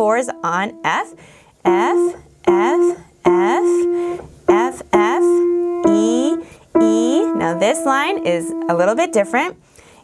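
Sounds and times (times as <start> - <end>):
grand piano notes: 0.0 - 9.6.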